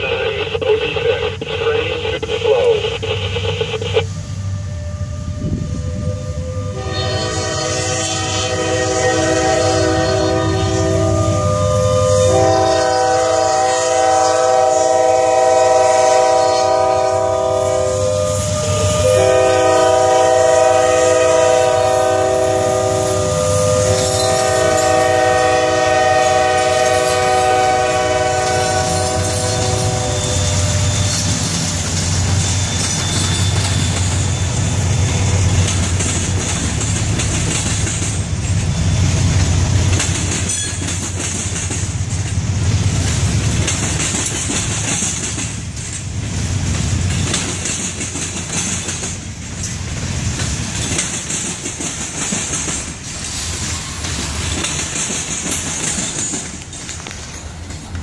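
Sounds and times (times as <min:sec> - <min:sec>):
freight train rumble: 0:00.0 - 0:58.0
locomotive air horn blasts: 0:04.6 - 0:30.9
wheels clicking over rails: 0:39.3 - 0:53.1, 0:54.0 - 0:58.0.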